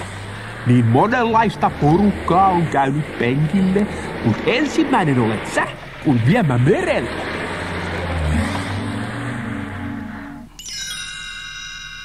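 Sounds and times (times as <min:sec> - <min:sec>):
held chime-like tone: 0:09.8 - 0:12.0.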